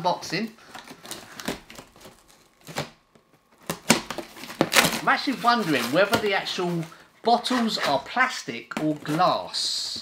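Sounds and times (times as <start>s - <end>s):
cardboard tearing: 0.7s - 3.0s, 3.6s - 8.1s.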